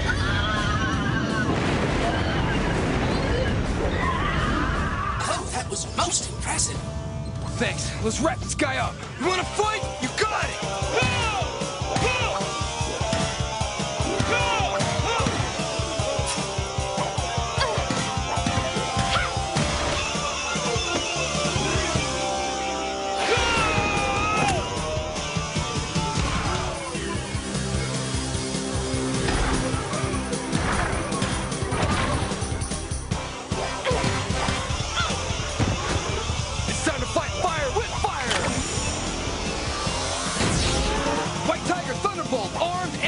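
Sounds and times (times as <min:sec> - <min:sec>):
hard rock music: 0:05.1 - 0:43.0.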